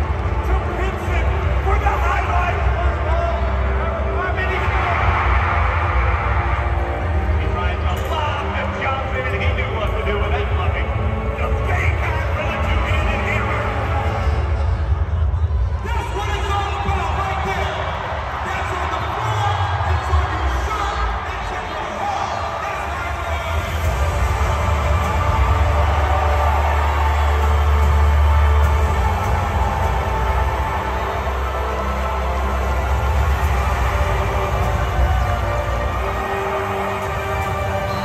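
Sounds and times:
large crowd cheering: 0:00.0 - 0:38.0
loud music with deep bass: 0:00.0 - 0:38.0.

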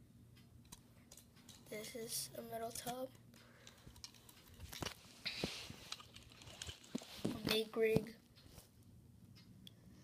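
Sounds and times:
toy cars clicking: 0:02.7 - 0:05.0, 0:05.9 - 0:07.6
cloth rustle: 0:05.0 - 0:07.6.

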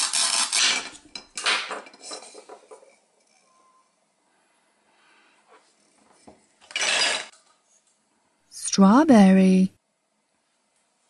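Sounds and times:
plastic toy knife scraping: 0:00.0 - 0:00.9.

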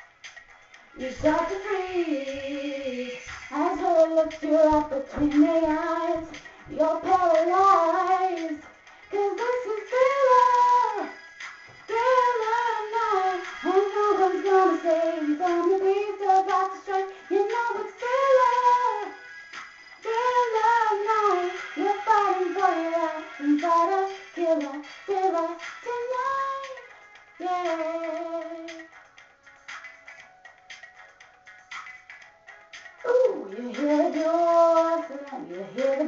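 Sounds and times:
woman singing unaccompanied: 0:01.0 - 0:11.2, 0:11.9 - 0:19.2, 0:20.0 - 0:28.9, 0:33.0 - 0:36.0.

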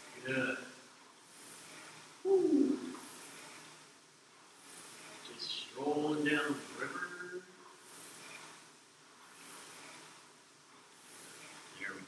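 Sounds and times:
rowing machine fan whoosh: 0:00.0 - 0:12.0.

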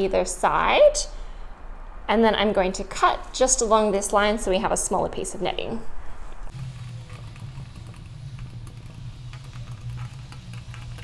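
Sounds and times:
steady low hum: 0:05.8 - 0:11.0.

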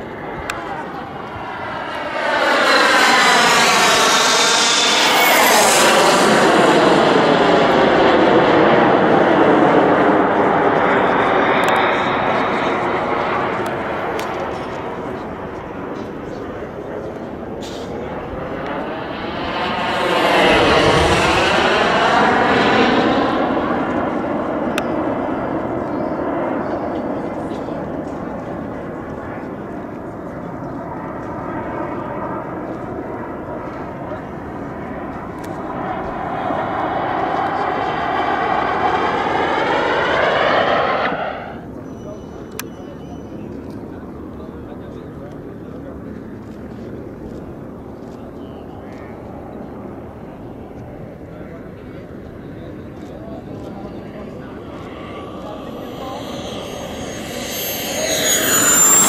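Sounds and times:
model jet turbine whining: 0:00.0 - 0:15.6, 0:34.6 - 0:41.7, 0:53.4 - 0:59.0.

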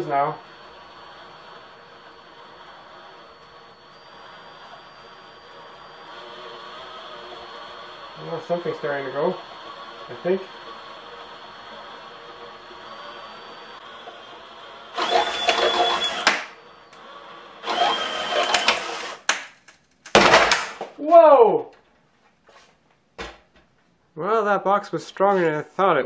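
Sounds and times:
cordless drill whining: 0:00.0 - 0:19.4
wooden box breaking: 0:19.3 - 0:20.9.

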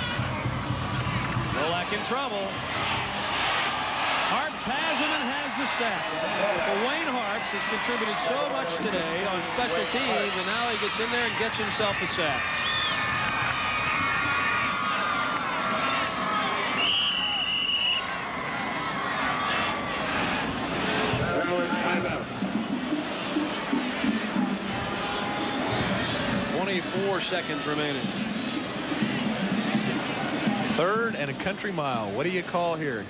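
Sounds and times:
people shouting: 0:00.0 - 0:22.1, 0:23.4 - 0:27.7
stadium crowd din: 0:00.0 - 0:33.0.

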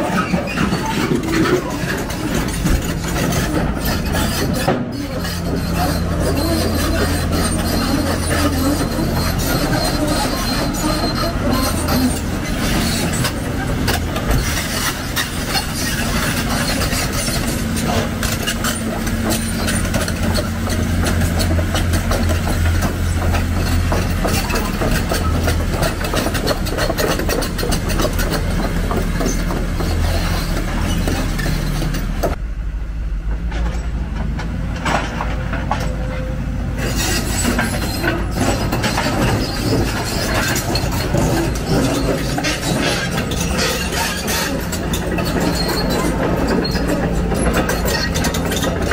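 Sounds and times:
diesel engine humming: 0:00.0 - 0:48.9
steel tracks clanking: 0:00.0 - 0:48.9.

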